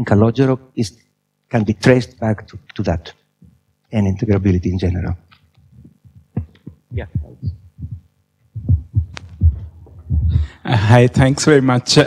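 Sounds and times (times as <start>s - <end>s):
soft low thumps: 5.7s - 11.3s.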